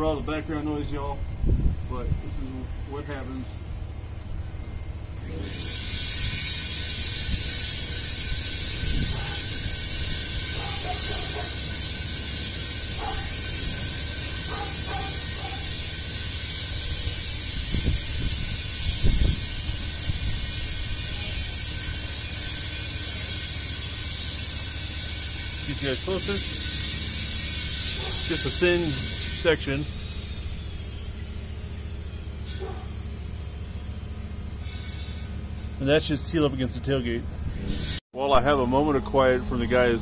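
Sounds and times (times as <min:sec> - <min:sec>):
low engine rumble: 0:00.0 - 0:40.0.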